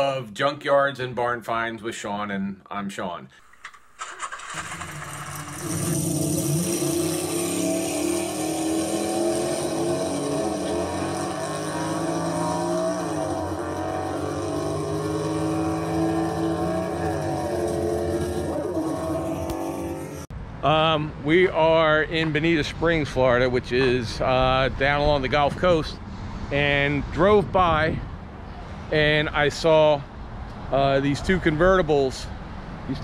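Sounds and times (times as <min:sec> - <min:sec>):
supercharged car engine revving: 0:03.6 - 0:20.3.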